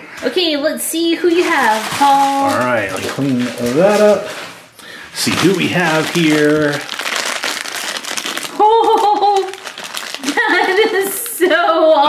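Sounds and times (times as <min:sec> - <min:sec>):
foil wrapper crinkling: 0:01.2 - 0:11.4
person making wordless vocal sounds: 0:02.4 - 0:03.6.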